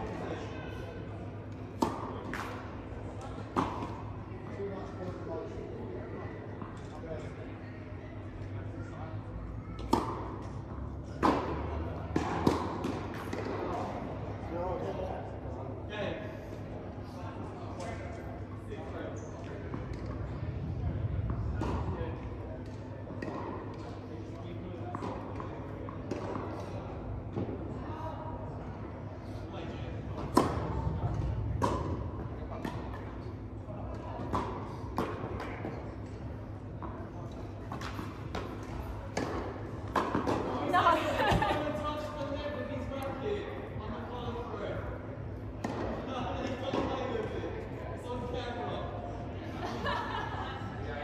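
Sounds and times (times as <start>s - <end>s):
tennis balls bouncing and struck: 1.5s - 4.1s, 9.8s - 14.2s, 21.2s - 24.0s, 24.8s - 27.6s, 30.2s - 33.5s, 34.2s - 40.6s, 45.5s - 46.0s
tennis ball bouncing: 9.8s - 10.6s, 30.2s - 30.7s, 37.7s - 40.5s.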